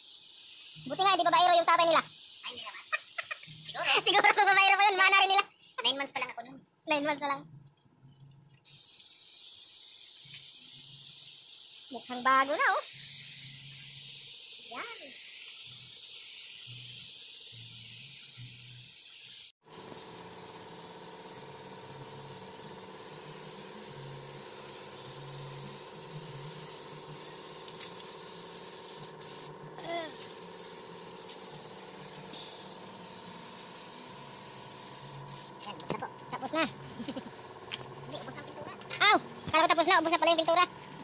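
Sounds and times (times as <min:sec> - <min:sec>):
spray gun hissing: 0:00.0 - 0:04.6, 0:08.7 - 0:36.6.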